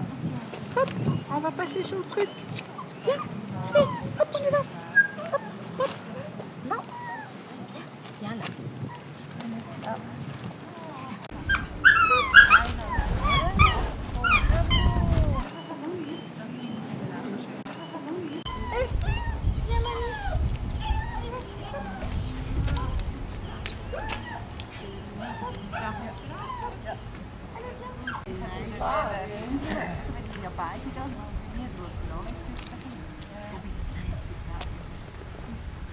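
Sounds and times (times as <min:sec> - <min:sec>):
indistinct voices: 0:00.0 - 0:35.9
small dogs yapping: 0:00.7 - 0:08.0, 0:11.2 - 0:15.6, 0:18.4 - 0:30.0.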